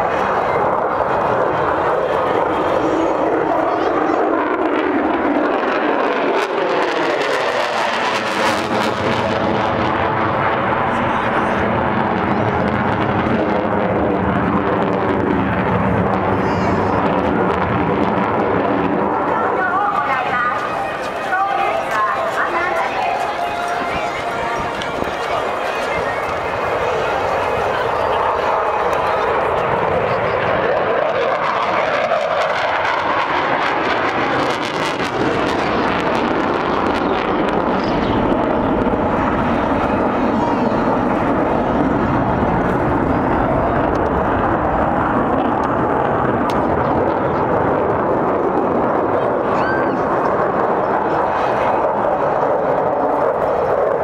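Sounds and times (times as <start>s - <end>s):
jet engine rushing: 0.0s - 54.0s.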